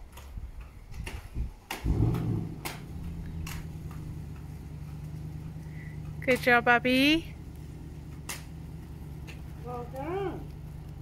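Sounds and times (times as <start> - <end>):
skate wheels clicking: 0.0 - 11.0
skate wheels rumbling on pavement: 0.0 - 11.0.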